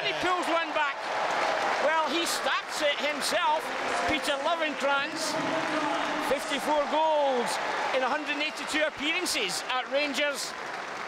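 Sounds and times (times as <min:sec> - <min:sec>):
man commentating: 0:00.0 - 0:10.6.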